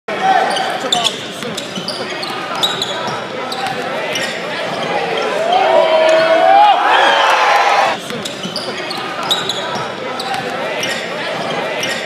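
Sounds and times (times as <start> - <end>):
voices of players and spectators: 0.1 - 12.0.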